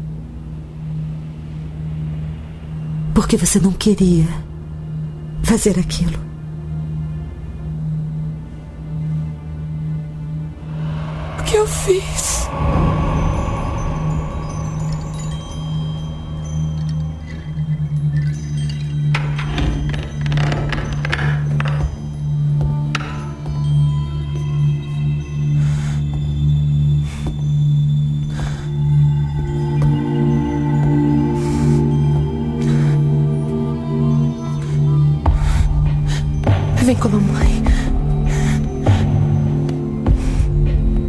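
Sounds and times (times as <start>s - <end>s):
music with low drone: 0.0s - 41.0s
deep rumble: 10.4s - 18.5s
wind chimes clinking: 10.9s - 20.2s.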